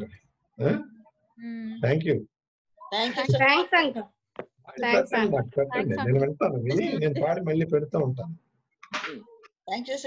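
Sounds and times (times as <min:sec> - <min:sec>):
speech over video call: 0:00.0 - 0:10.0.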